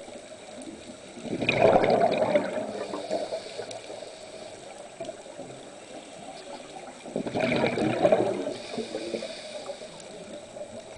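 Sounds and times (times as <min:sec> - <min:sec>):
air bubbles gurgling underwater: 0:00.0 - 0:04.0, 0:04.7 - 0:09.5.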